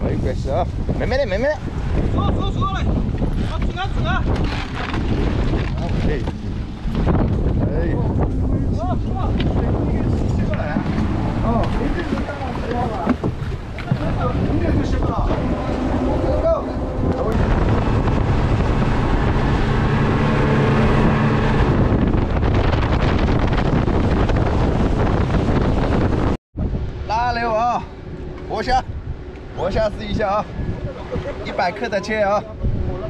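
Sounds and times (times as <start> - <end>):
rushing water: 0.0 - 32.4
outboard motors droning: 0.0 - 33.0
wind buffeting microphone: 0.0 - 33.0.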